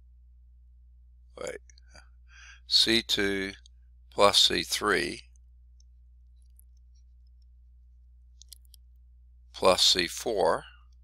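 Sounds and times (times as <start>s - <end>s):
faint low hum: 0.0s - 11.0s
man speaking: 1.4s - 1.6s, 2.7s - 5.4s, 9.6s - 10.8s
faint clicks: 5.3s - 7.6s, 8.4s - 9.0s.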